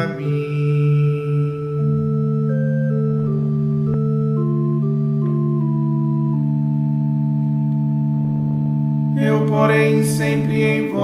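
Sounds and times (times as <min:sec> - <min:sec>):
held instrumental chord: 0:00.0 - 0:11.0.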